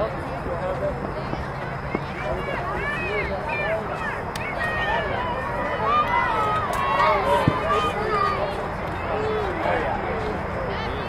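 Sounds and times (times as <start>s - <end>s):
people calling out: 1.3s - 11.0s.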